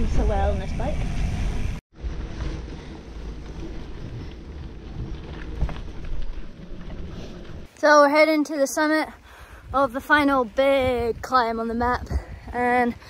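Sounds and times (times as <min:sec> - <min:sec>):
tyres rolling over dirt: 0:01.9 - 0:07.8
bike knocks and rattles: 0:02.0 - 0:07.7
wind on microphone: 0:09.1 - 0:13.0.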